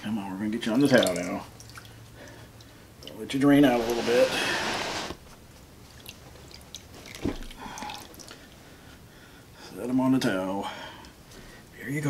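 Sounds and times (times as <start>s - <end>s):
water dripping into plastic tub: 0.7s - 3.4s, 5.9s - 8.6s.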